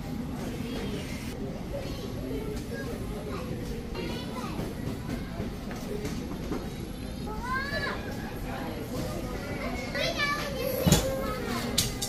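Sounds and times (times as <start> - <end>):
children's voices and chatter: 0.0 - 12.0.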